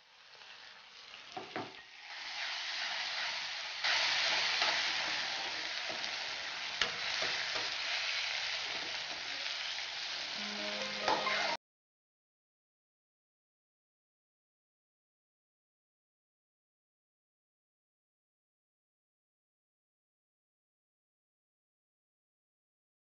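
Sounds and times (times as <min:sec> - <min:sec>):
vegetables sizzling in hot oil: 0:00.0 - 0:11.6.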